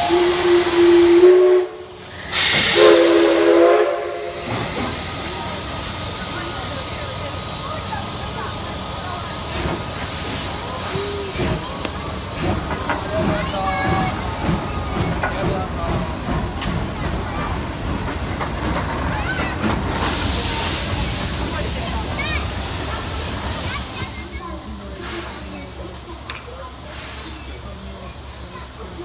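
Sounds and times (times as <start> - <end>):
steam locomotive whistle: 0.0 - 4.7
steam hissing: 0.0 - 29.0
train wheel clicks: 9.4 - 21.6.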